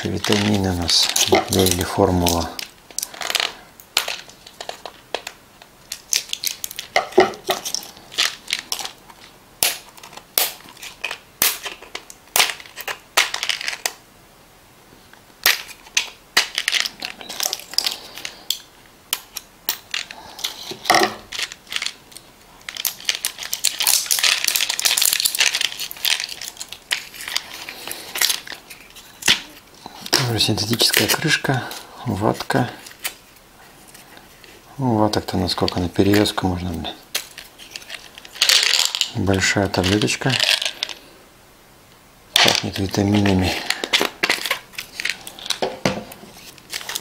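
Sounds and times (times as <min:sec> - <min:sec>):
plastic wrapping crinkling: 0:00.0 - 0:14.0, 0:15.4 - 0:41.1, 0:42.3 - 0:47.0.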